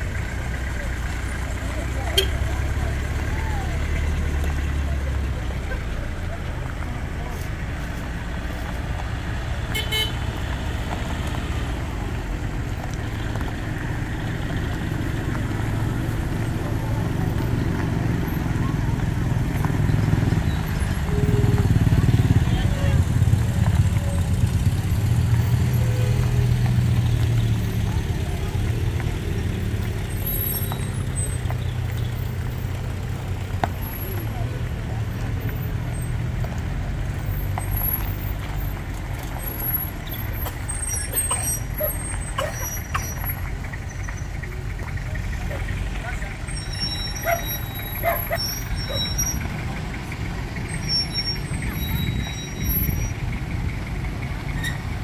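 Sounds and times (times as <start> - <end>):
crowd voices: 0.0 - 55.0
pickup truck engines running: 0.0 - 55.0
truck horn toot: 2.1 - 2.6, 9.7 - 10.4.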